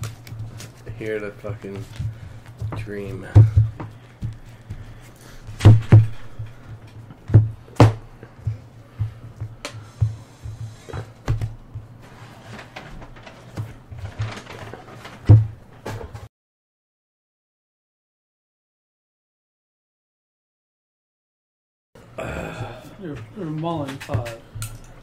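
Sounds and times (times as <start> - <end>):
cards knocking on tabletop: 5.6 - 11.6.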